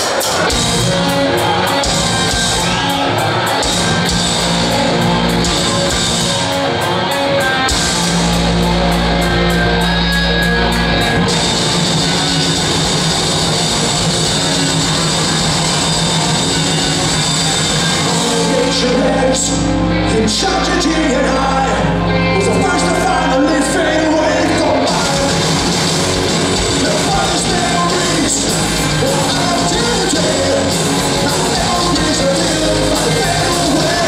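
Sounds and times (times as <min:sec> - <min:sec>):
bass guitar: 0:00.0 - 0:34.0
distorted electric guitars: 0:00.0 - 0:34.0
drums: 0:00.0 - 0:34.0.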